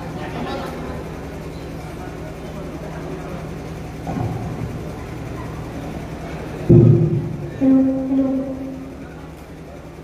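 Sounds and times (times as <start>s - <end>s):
pa system low hum: 0.0s - 10.0s
loud burst from loudspeakers: 6.7s - 9.2s.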